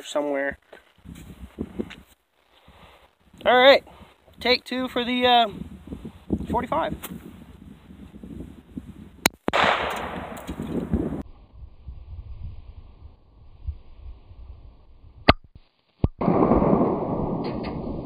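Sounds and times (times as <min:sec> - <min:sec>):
pistol shot: 0:09.5 - 0:10.7, 0:16.2 - 0:18.0.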